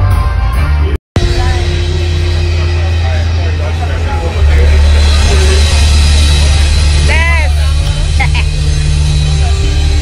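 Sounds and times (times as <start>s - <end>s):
loud bass-heavy music: 0.0s - 10.0s.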